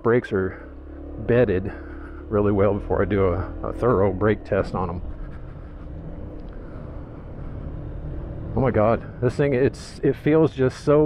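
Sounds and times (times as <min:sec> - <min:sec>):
scooter engine rumble: 0:00.0 - 0:11.0
wind and road noise: 0:00.0 - 0:11.0.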